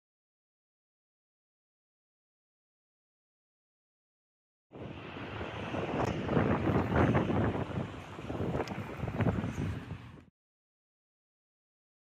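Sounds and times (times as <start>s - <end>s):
wind buffeting microphone: 4.7s - 10.3s.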